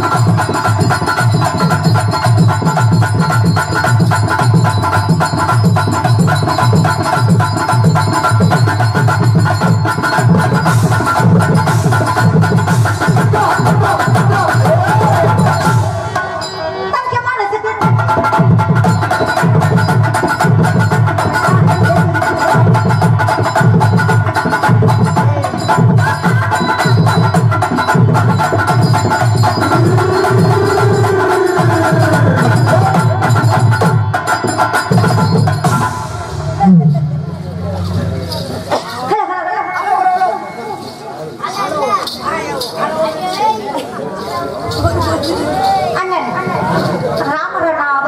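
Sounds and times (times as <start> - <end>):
voices: 0.0 - 18.2, 21.2 - 48.0
tabla and drum kit band music: 0.0 - 48.0.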